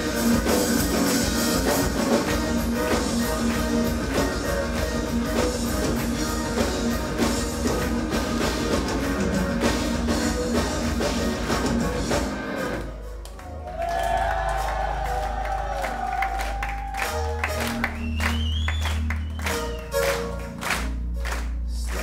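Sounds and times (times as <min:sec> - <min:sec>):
live metal band playing: 0:00.0 - 0:18.0
crowd noise: 0:00.0 - 0:22.0
deep bass: 0:12.9 - 0:22.0.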